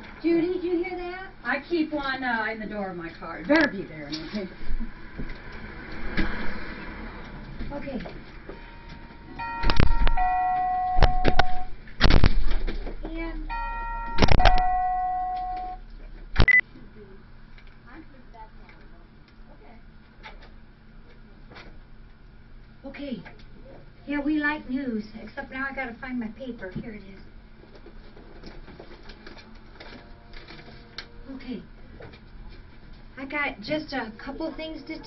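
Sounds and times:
two-note electronic door chime: 0:08.7 - 0:11.7, 0:13.5 - 0:15.8
paper clicks and rustles: 0:27.7 - 0:31.1.

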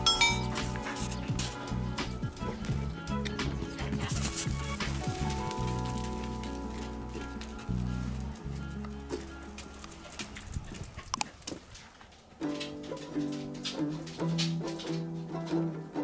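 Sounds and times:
music of sustained chords: 0:00.0 - 0:10.5.

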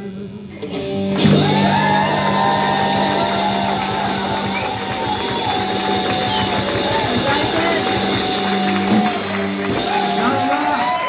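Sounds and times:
rock band playing: 0:00.6 - 0:11.0.

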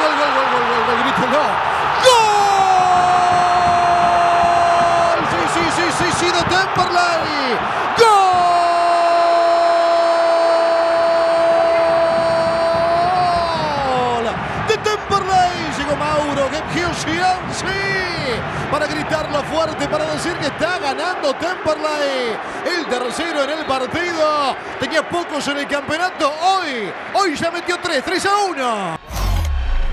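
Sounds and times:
commentator shouting: 0:00.0 - 0:29.0
crowd noise: 0:00.0 - 0:29.9.

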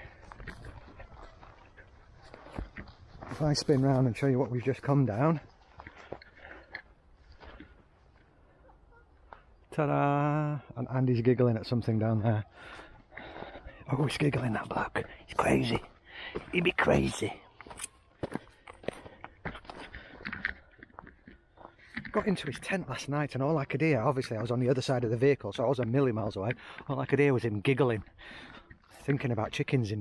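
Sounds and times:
footsteps on grass: 0:00.0 - 0:08.3, 0:15.3 - 0:22.2.

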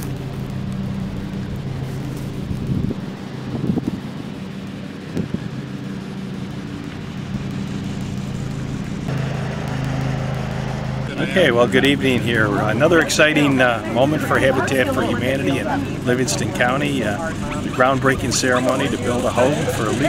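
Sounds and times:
low engine hum: 0:00.0 - 0:20.0.

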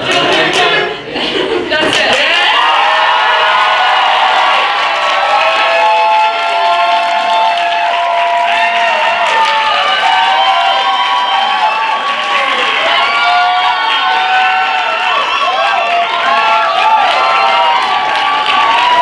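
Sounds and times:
people clapping: 0:00.0 - 0:00.9, 0:01.8 - 0:19.0
young people cheering and whooping: 0:02.1 - 0:19.0.

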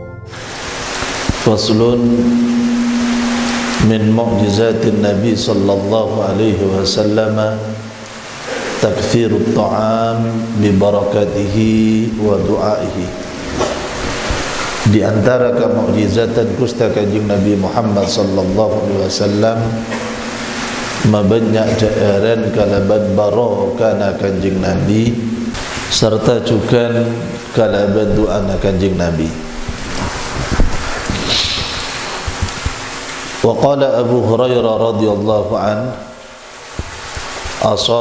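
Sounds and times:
steady hiss: 0:00.3 - 0:38.0
soft low thumps: 0:29.4 - 0:32.8.

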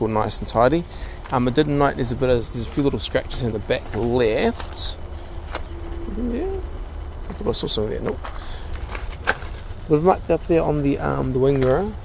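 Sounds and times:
man speaking hesitantly: 0:06.0 - 0:08.2.

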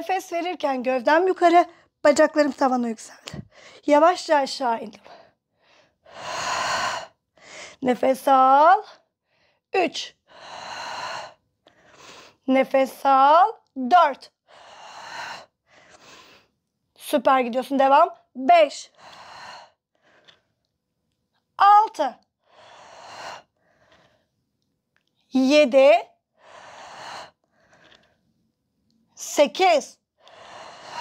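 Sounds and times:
woman breathing with effort: 0:05.0 - 0:07.8, 0:09.0 - 0:12.4, 0:14.4 - 0:16.6, 0:18.9 - 0:20.7, 0:22.4 - 0:24.5, 0:26.2 - 0:28.4, 0:30.1 - 0:31.0.

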